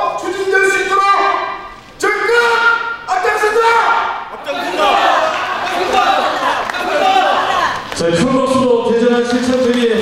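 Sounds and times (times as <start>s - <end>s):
crowd chanting in unison: 4.4s - 7.9s.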